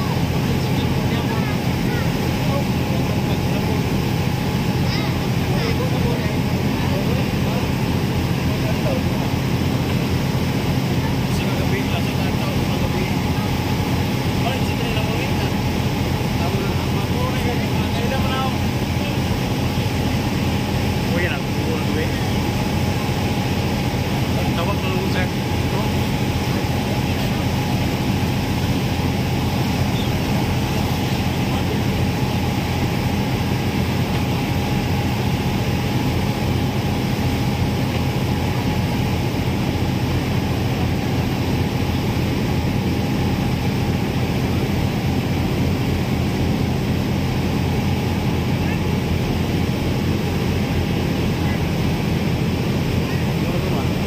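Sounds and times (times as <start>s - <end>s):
ferry engines droning: 0.0s - 54.0s
high engine whine: 0.0s - 54.0s.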